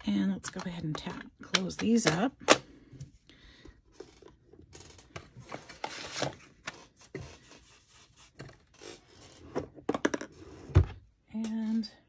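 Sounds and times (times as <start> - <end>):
paper rustling and scraping: 4.0 - 9.5.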